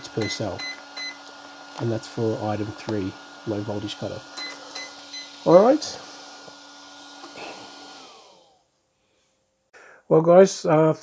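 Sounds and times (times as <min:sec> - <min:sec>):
small cooling fan whirring: 0:00.0 - 0:09.7.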